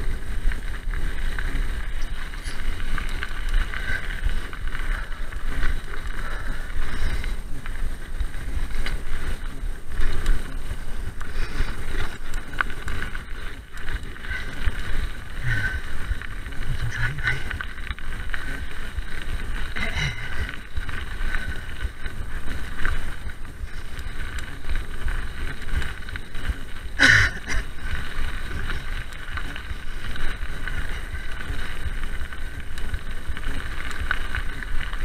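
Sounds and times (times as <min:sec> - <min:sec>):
tyre rumble on gravel: 0:00.0 - 0:35.0
wind buffeting microphone: 0:00.0 - 0:35.0.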